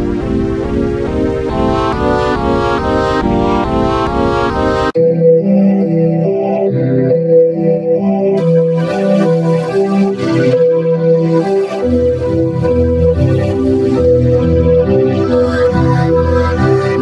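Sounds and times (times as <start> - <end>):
bass line: 0.0 - 5.0
electronic music: 0.0 - 17.0.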